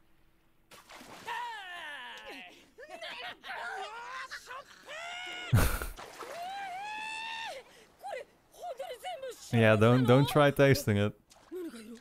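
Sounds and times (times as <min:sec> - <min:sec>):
anime characters shouting: 0:01.2 - 0:05.6.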